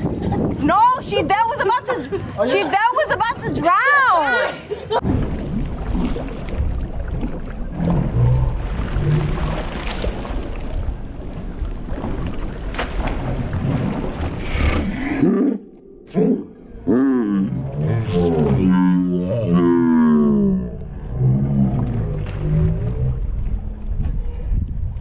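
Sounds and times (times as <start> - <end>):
pool water sloshing and splashing: 2.0 - 16.2, 17.4 - 24.0.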